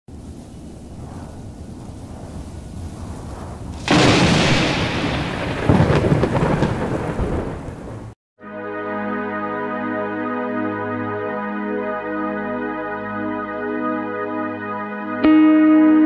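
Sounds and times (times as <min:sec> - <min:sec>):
thunder rumbling: 0:00.1 - 0:08.2
loud thunderclap: 0:01.0 - 0:08.2
steady rain: 0:03.6 - 0:08.2.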